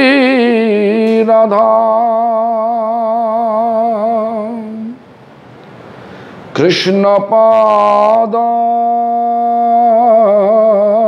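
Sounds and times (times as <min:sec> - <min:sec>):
man chanting a prayer: 0:00.0 - 0:05.0, 0:06.5 - 0:11.0.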